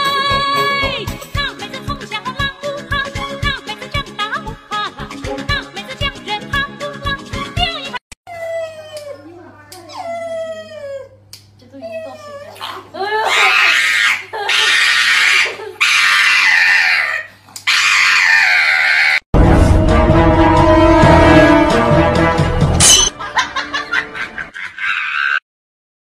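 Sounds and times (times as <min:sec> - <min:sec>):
music: 0:00.0 - 0:08.0, 0:19.4 - 0:24.5
high-pitched screaming cries: 0:13.2 - 0:19.2, 0:24.7 - 0:25.4.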